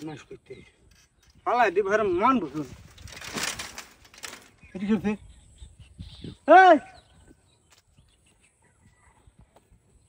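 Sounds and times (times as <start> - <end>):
bare feet on dirt path: 7.0 - 10.0.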